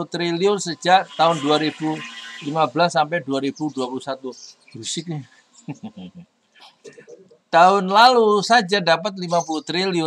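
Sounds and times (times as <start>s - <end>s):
breathy chuckle: 5.6s - 6.3s.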